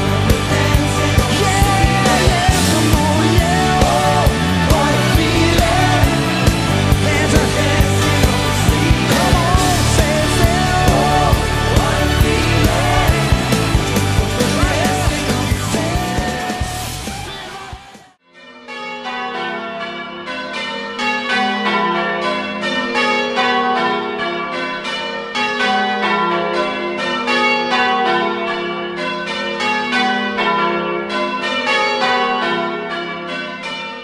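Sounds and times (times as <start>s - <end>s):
music: 0.0s - 18.2s
church bells ringing: 0.0s - 34.0s.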